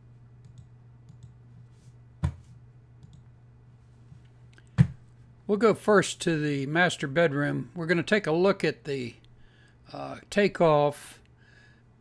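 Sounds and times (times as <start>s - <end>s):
low steady hum: 0.0s - 12.0s
computer mouse click: 0.4s - 1.4s, 3.0s - 3.3s.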